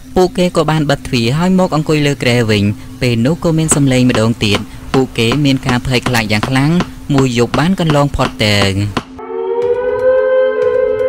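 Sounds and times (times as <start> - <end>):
person narrating: 0.0 - 9.0
eerie held musical tone: 9.2 - 11.0.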